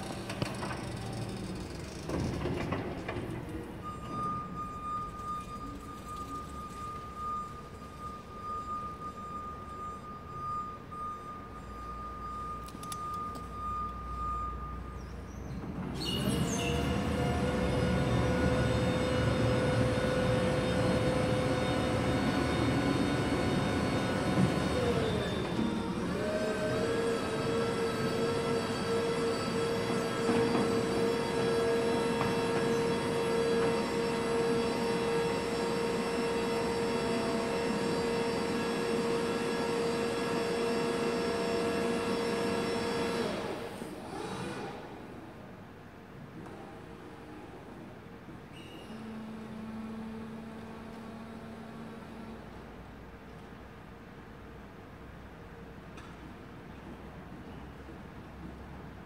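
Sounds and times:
hydraulic lift motor whining: 15.8s - 45.1s.

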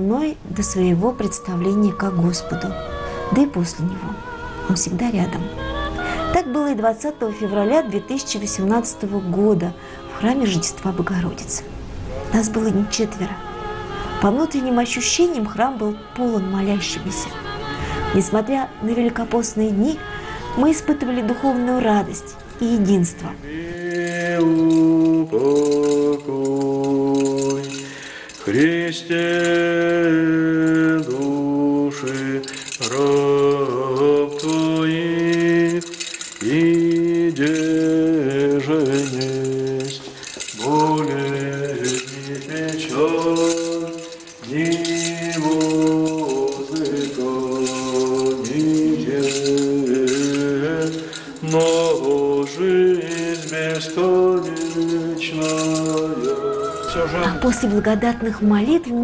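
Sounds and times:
censer bells jingling: 0.0s - 13.5s, 18.2s - 59.0s
man chanting: 23.4s - 58.5s.

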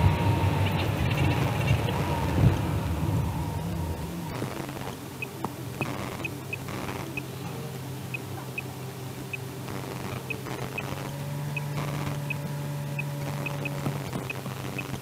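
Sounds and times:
low hum inside a car: 0.0s - 15.0s
faint high chirps: 4.3s - 15.0s.

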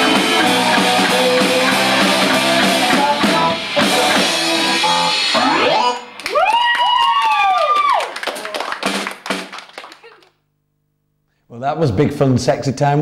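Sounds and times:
live rock band: 0.0s - 5.6s
long bending guitar notes: 0.0s - 6.2s.

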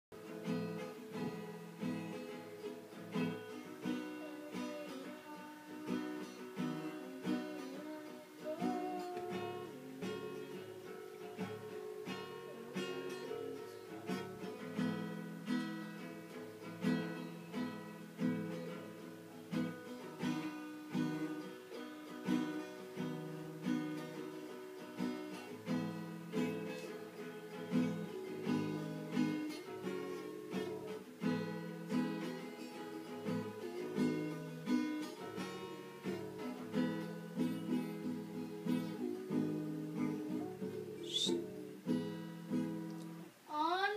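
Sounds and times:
acoustic guitar strumming: 0.1s - 43.9s.

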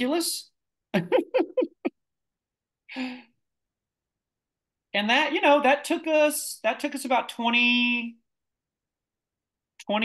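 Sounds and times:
person laughing: 0.9s - 2.0s.

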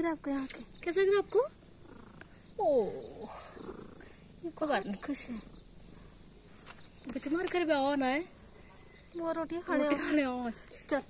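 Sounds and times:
cat purring: 0.6s - 9.1s.

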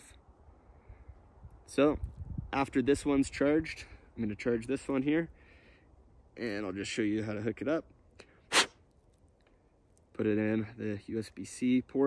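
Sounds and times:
quick sniff: 8.2s - 8.8s.

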